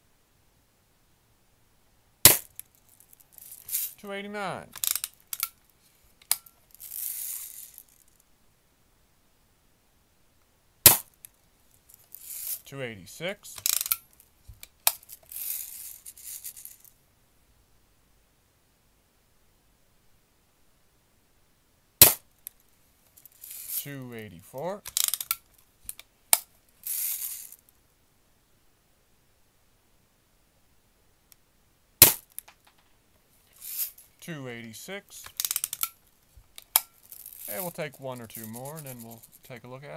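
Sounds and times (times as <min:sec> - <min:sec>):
bb gun firing crack: 0:02.2 - 0:02.5, 0:10.8 - 0:11.1, 0:22.0 - 0:22.3, 0:32.0 - 0:32.6
bb striking target trap: 0:02.3 - 0:02.5, 0:10.8 - 0:11.1, 0:22.0 - 0:22.2, 0:32.0 - 0:32.8
bb gun pop: 0:22.0 - 0:22.2, 0:32.0 - 0:32.2.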